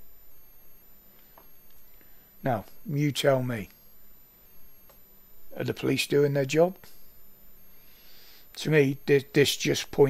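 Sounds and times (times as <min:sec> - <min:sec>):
high-pitched electronic whine: 0:00.0 - 0:10.0
low hum: 0:00.0 - 0:10.0.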